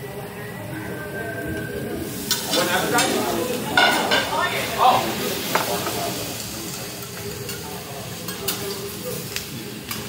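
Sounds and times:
food sizzling on griddle: 0.1 - 10.0.

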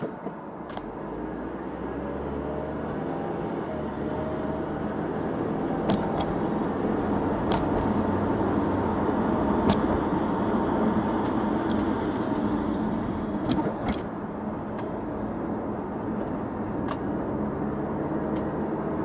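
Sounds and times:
car road and engine noise: 0.0 - 19.0.

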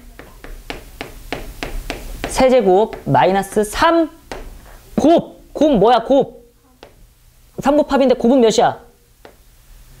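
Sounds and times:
chalk tapping on chalkboard: 0.0 - 4.7, 6.8 - 7.0, 9.2 - 9.4.

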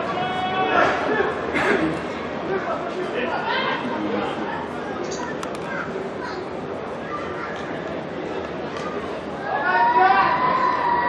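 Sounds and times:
crowd murmur: 0.0 - 11.0
people shouting and chattering: 0.0 - 11.0.

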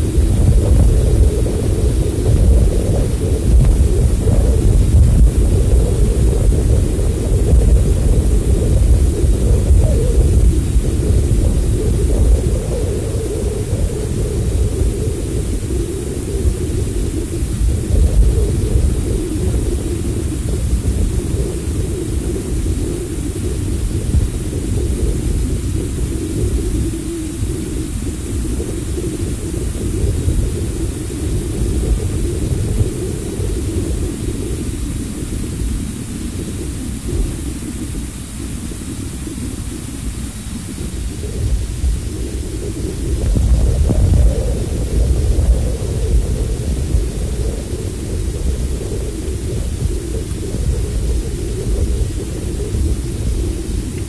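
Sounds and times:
low rumbling wind noise: 0.0 - 54.0.

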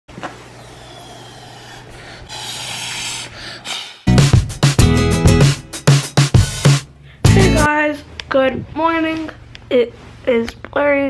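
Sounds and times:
air blown through straw into slime: 0.6 - 4.1.

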